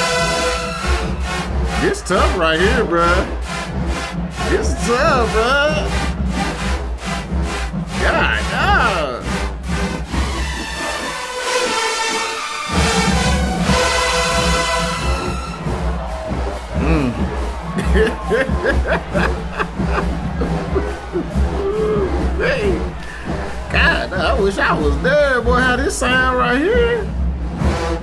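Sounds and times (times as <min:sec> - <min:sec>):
drum beat: 0:00.0 - 0:28.0
marching band brass chords: 0:00.0 - 0:28.0
voices shouting and chanting: 0:01.1 - 0:03.5, 0:04.2 - 0:06.2, 0:08.0 - 0:09.4, 0:15.0 - 0:27.1.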